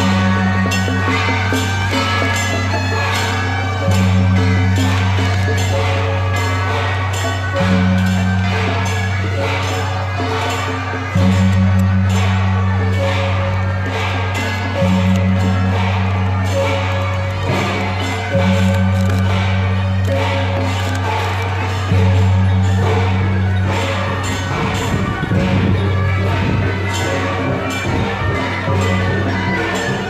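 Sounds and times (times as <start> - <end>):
rapid cymbal and gong beats: 0.0 - 30.0.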